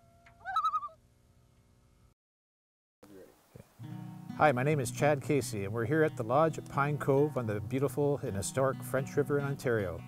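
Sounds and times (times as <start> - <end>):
bird call: 0.4 - 1.0.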